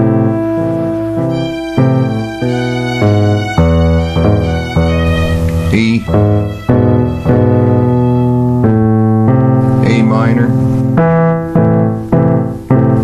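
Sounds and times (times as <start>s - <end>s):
piano playing sustained chords: 0.0s - 13.0s.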